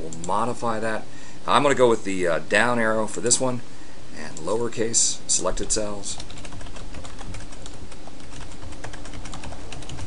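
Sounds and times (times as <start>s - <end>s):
typing on computer keyboard: 6.2s - 10.0s.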